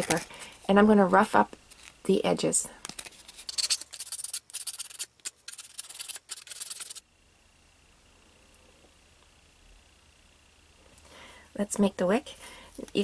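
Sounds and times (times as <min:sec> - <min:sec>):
sandpaper rubbing on stick: 0:03.0 - 0:07.0.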